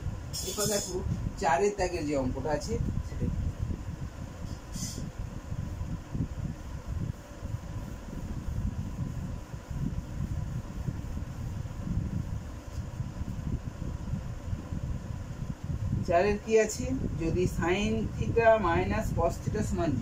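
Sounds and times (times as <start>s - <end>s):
faint steady hum: 0.0s - 20.0s
room fan air rumble: 0.0s - 20.0s.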